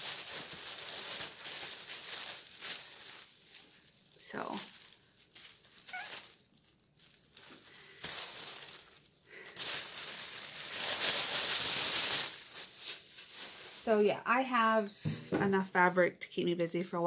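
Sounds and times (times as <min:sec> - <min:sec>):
fabric and packaging rustling: 0:00.0 - 0:14.1.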